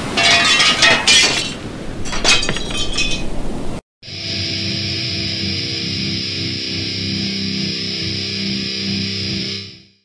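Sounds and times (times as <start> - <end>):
glass breaking: 0.2 - 3.3
glass shards tinkling: 0.2 - 3.3.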